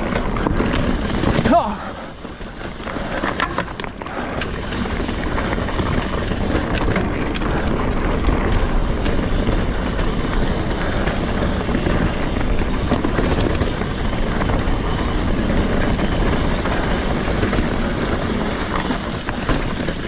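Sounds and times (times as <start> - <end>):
bike tyres rolling over dirt: 0.0 - 20.0.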